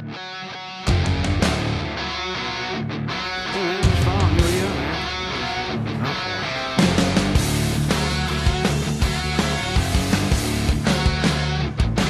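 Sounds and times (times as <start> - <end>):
rock music with electric guitar: 0.0 - 12.0.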